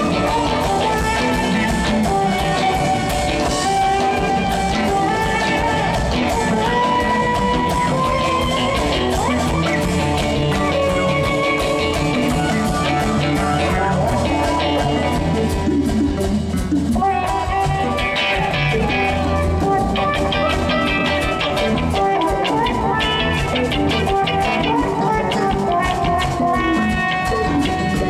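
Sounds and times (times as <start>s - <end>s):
electric guitar: 0.0s - 28.0s
funk band playing: 0.0s - 28.0s.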